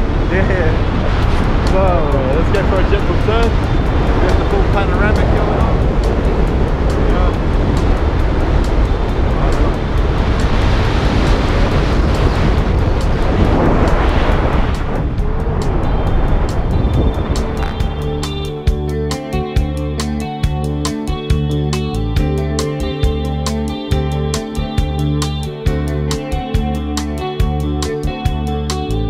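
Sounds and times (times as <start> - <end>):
wind rushing over microphone: 0.0 - 23.7
guitar background music: 0.0 - 29.0.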